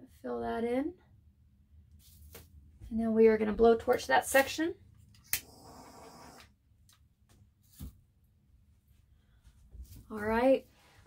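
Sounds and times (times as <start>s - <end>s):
blowtorch hissing: 5.4s - 6.4s.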